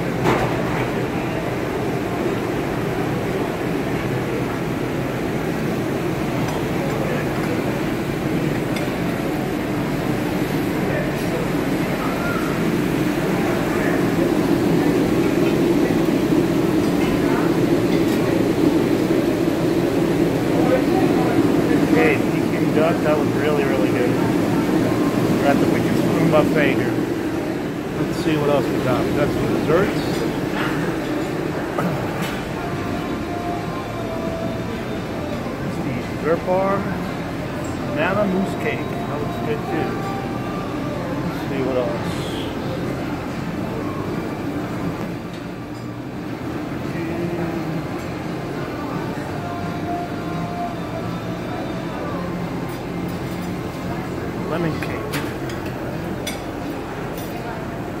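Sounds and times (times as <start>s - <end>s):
crowd murmur: 0.0s - 58.0s
indistinct voices in dining room: 0.0s - 58.0s
ventilation rumble: 0.0s - 58.0s.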